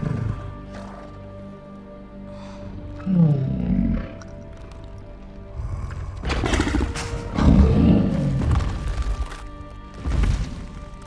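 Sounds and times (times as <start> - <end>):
orchestral film score: 0.0 - 11.0
monster roaring: 3.0 - 4.9, 5.6 - 8.7.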